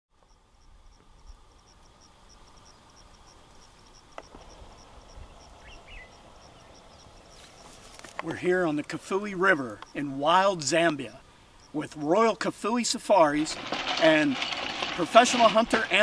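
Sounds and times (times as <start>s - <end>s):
insect chirping: 0.2s - 16.0s.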